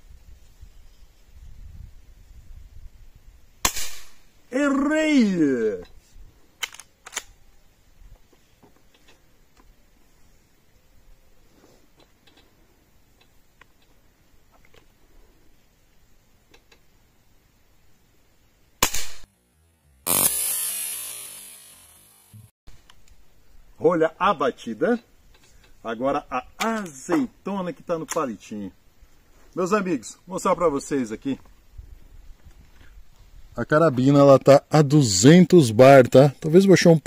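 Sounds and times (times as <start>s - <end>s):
air rifle shot: 3.6s - 4.3s, 18.8s - 19.3s
burst of noise: 18.8s - 22.5s.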